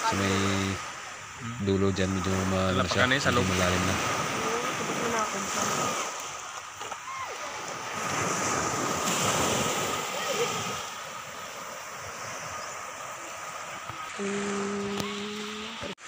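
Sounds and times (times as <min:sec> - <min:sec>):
waves on pebbly beach: 0:00.0 - 0:16.0.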